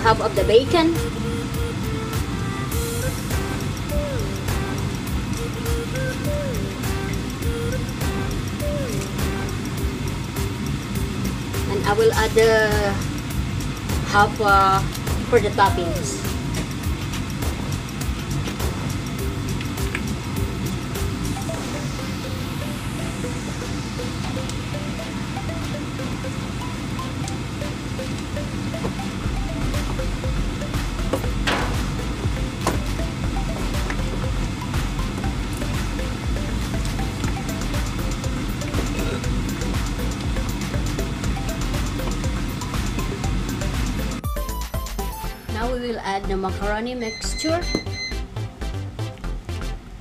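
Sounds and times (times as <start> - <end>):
deep bass: 0.0 - 24.8, 29.2 - 44.3
background music: 0.0 - 50.0.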